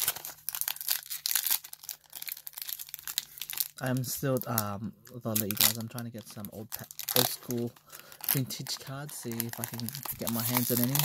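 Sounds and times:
foil wrapper crinkling and tearing: 0.0s - 11.0s
person speaking: 3.8s - 11.0s.

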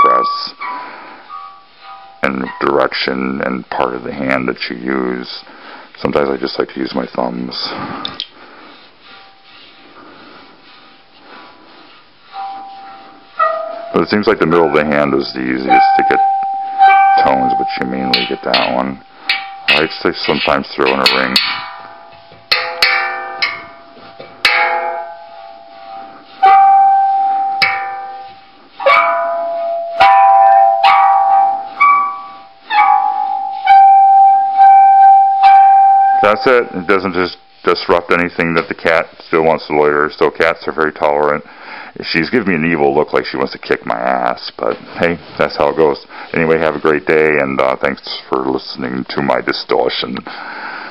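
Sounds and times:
ringing tone with overtones: 0.0s - 2.8s, 12.4s - 20.0s, 20.8s - 37.6s
water gong humming: 12.4s - 36.8s.

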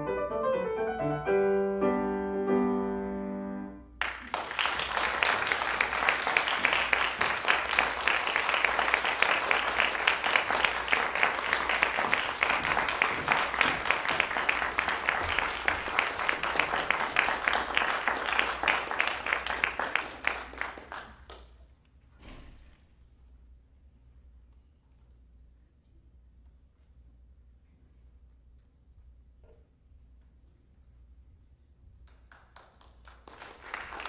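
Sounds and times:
piano chord: 0.0s - 4.0s
audience applauding: 4.0s - 21.5s, 32.1s - 34.0s.

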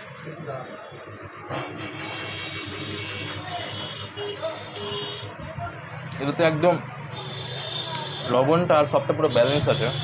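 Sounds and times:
faint voices: 0.2s - 9.0s.

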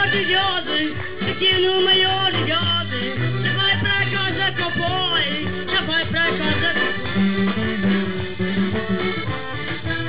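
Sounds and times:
man singing into a microphone: 0.0s - 7.1s
accordion: 0.0s - 10.0s
drums: 0.0s - 10.0s.

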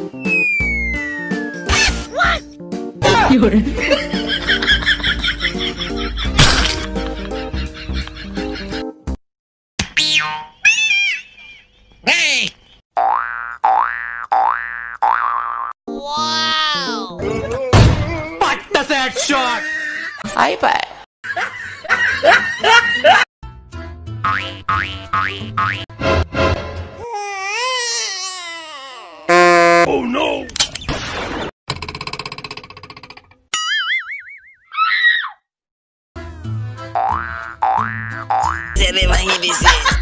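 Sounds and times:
cartoon comedy sound effect: 0.3s - 2.4s, 10.0s - 11.6s
springy boing: 13.0s - 15.7s.

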